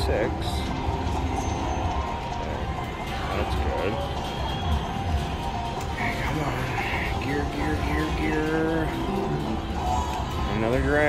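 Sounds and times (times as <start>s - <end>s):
slot machine music: 0.0s - 11.0s.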